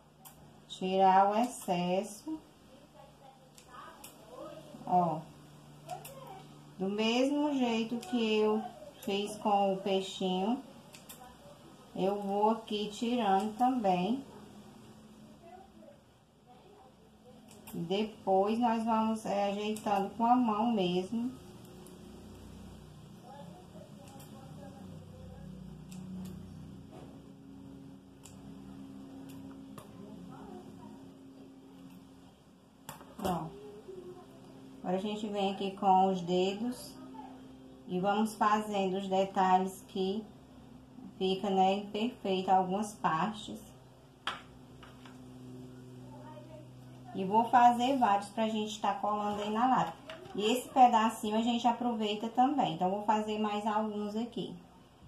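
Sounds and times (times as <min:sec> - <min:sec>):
low room hum: 0:00.0 - 0:55.0.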